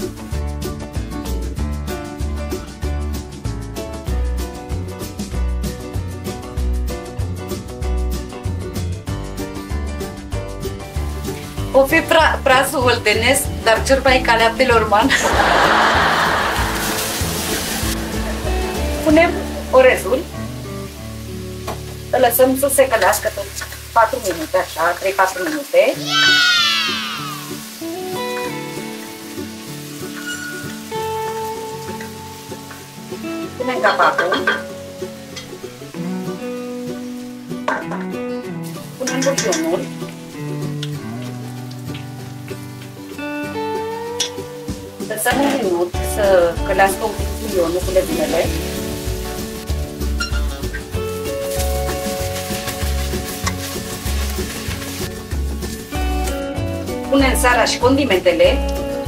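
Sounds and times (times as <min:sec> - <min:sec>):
background music of held notes: 0:00.0 - 0:59.0
vegetables sizzling in oil: 0:10.0 - 0:59.0
wooden spoon stirring in pot: 0:47.6 - 0:56.3.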